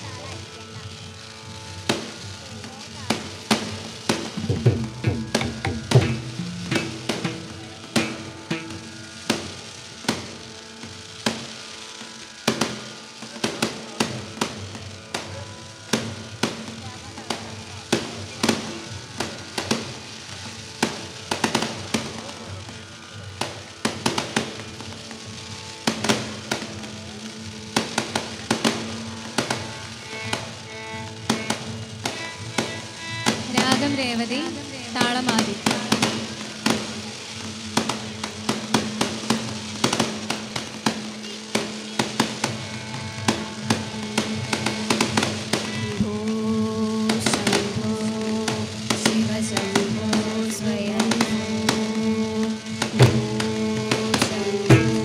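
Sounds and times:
fireworks bangs and crackles: 0.0 - 55.0
background music with held drone: 42.6 - 55.0.

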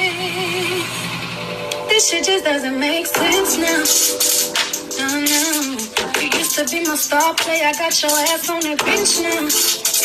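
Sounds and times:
backing track chord: 0.3 - 8.0.

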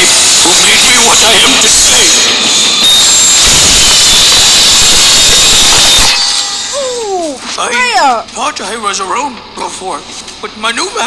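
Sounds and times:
circular saw blade whirring: 0.0 - 7.1.

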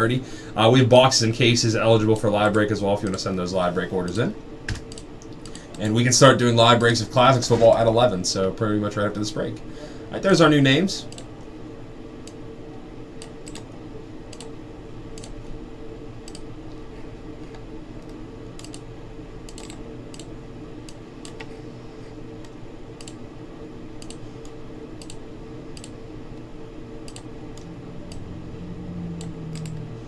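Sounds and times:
low electrical hum: 0.0 - 30.0
keyboard and mouse clicks: 4.1 - 5.8, 13.2 - 13.7, 15.2 - 15.4, 18.0 - 18.8, 19.5 - 21.5, 27.0 - 28.3, 29.2 - 29.9.

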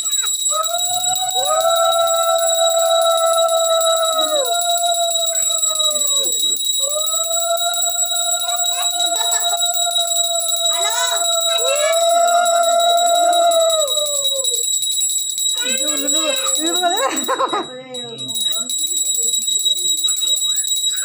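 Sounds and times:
hand bell ringing: 0.0 - 21.0
long held tones sliding down: 0.6 - 14.6.

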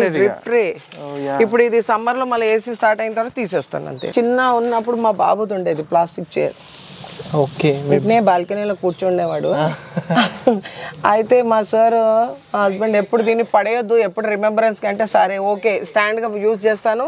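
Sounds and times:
soft hiss: 4.1 - 15.1.

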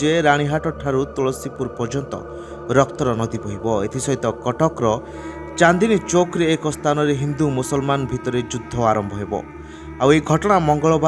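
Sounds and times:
male narrator speaking: 0.0 - 9.4, 10.0 - 11.0.

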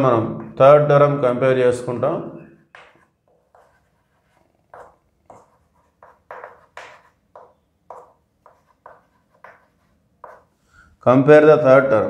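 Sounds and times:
chalk scratching on chalkboard: 2.8 - 10.8.

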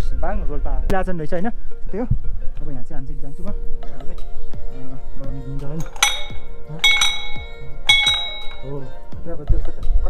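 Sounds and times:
background music with a beat: 3.3 - 10.0
brass bell ringing: 5.8 - 8.9.

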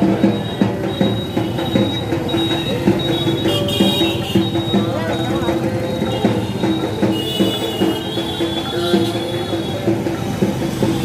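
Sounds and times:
drum beats with pitched ring: 0.0 - 11.0.

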